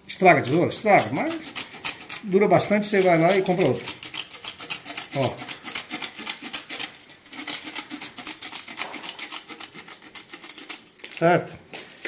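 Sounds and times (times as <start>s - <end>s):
shears snipping sandpaper: 0.2s - 11.2s.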